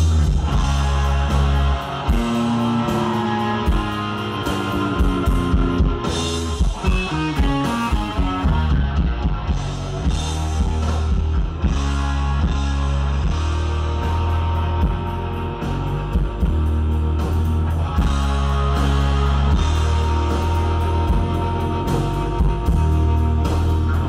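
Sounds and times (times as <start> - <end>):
electric guitar lead: 0.0 - 24.0
rock band playing: 0.0 - 24.0.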